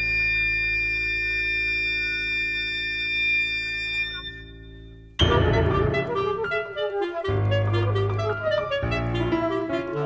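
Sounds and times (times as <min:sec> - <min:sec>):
flute clarinet and piano chord: 0:05.2 - 0:10.0.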